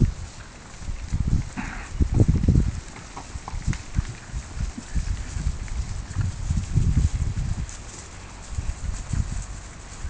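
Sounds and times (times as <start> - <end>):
cows moving low thuds: 0.0 - 10.0.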